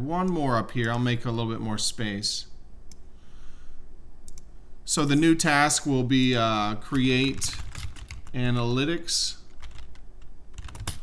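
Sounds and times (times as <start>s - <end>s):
computer mouse clicking: 4.3s - 4.5s.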